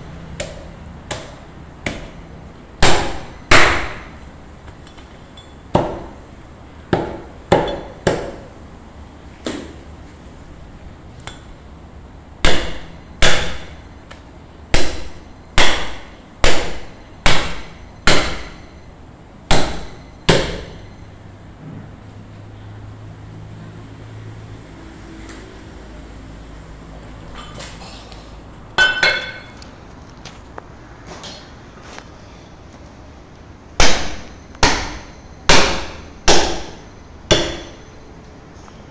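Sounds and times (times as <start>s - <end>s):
cleaver chopping on wooden block: 12.4s - 13.7s, 14.8s - 18.6s, 19.5s - 20.7s, 33.8s - 37.7s.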